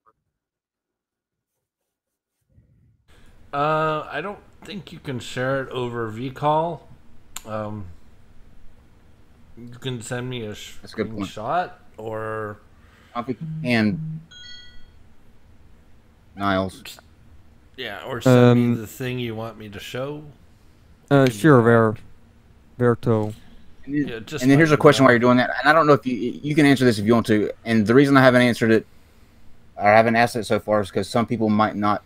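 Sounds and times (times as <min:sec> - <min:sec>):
man speaking: 0:03.6 - 0:06.8, 0:07.4 - 0:07.9, 0:09.6 - 0:12.6, 0:13.2 - 0:14.1, 0:17.8 - 0:20.3, 0:21.1 - 0:22.0, 0:22.8 - 0:28.8, 0:29.8 - 0:32.0
electronic notification chime: 0:13.4 - 0:14.8.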